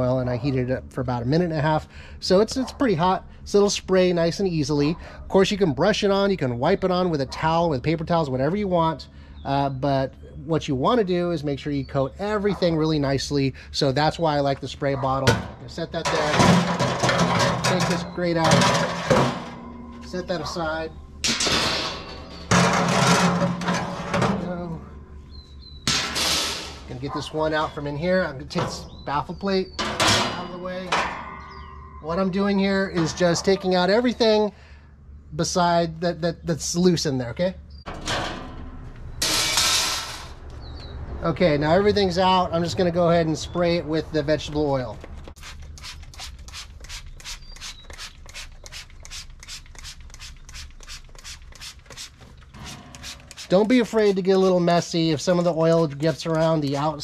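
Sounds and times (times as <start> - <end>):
metal clank: 15.3 - 20.6, 21.2 - 24.6, 29.8 - 32.4, 37.9 - 40.4
metal grate scraping on steel: 16.0 - 24.5, 37.9 - 40.4, 52.5 - 54.7
spray bottle hissing: 45.4 - 52.2, 52.9 - 53.5.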